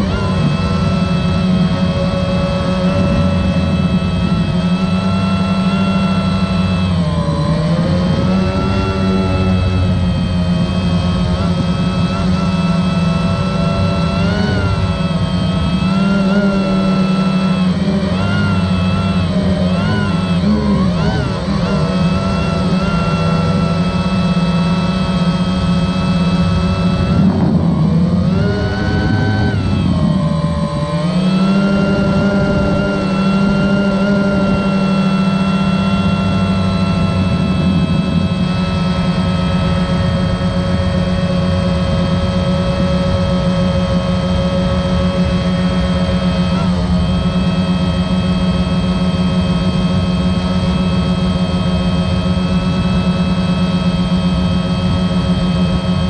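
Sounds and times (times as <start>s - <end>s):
drone propellers humming: 0.0s - 56.0s.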